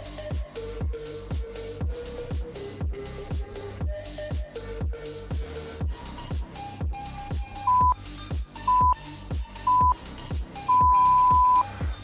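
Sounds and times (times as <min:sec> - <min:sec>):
electronic music with bass drum: 0:00.0 - 0:12.0
interval timer beeps: 0:07.7 - 0:08.0, 0:08.7 - 0:09.0, 0:09.7 - 0:10.0, 0:10.7 - 0:11.7.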